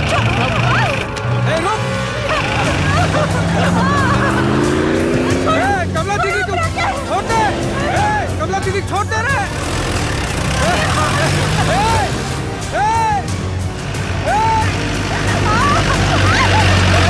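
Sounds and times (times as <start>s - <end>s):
truck engine speeding past: 0.0s - 17.0s.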